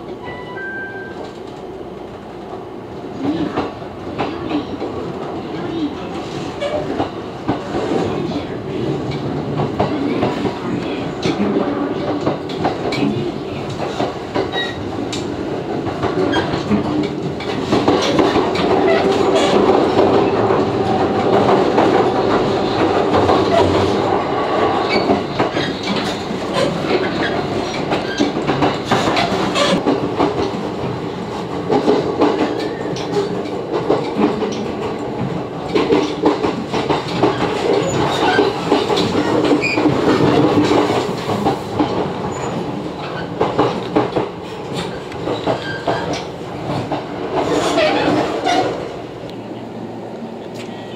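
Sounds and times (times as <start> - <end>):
train running rumble: 1.2 - 50.9
wheels clicking over rail joints: 31.6 - 48.6.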